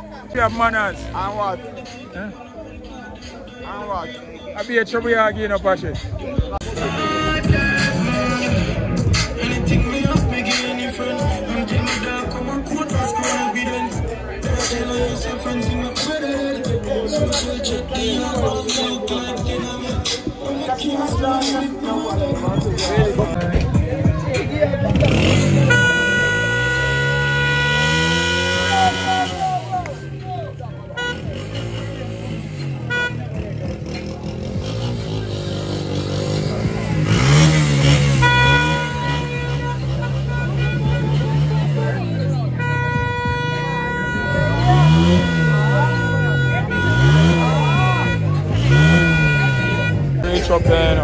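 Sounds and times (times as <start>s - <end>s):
rhythmic music mix: 0.0s - 32.6s
vehicle horn toot and beeps: 25.0s - 29.6s, 30.9s - 31.9s, 32.6s - 33.8s, 37.0s - 50.3s
small motorcycle engine revving: 31.0s - 42.0s, 44.4s - 49.9s.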